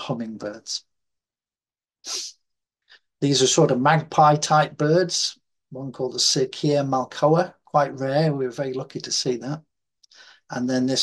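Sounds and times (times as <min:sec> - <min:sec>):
faint mouth noise: 0:02.0 - 0:02.4
person speaking: 0:02.0 - 0:02.4, 0:10.5 - 0:11.0
sharp breath intake: 0:02.1 - 0:03.1.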